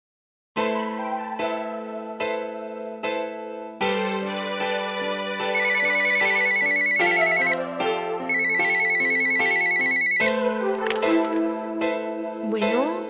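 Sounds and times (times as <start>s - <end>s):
keyboard music: 0.6s - 13.0s
warbling electronic telephone ring: 5.5s - 7.6s, 8.3s - 10.3s.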